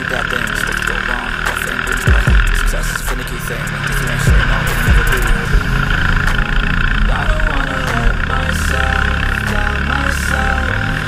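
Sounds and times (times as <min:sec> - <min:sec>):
racing kart engine: 0:00.0 - 0:11.0
music with melody: 0:01.3 - 0:11.0.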